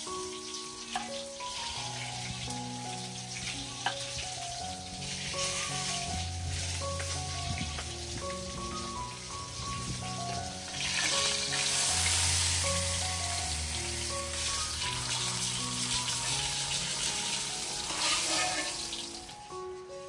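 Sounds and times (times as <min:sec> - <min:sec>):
fish sizzling in oil: 0:00.0 - 0:20.0
soft background music: 0:00.0 - 0:20.0.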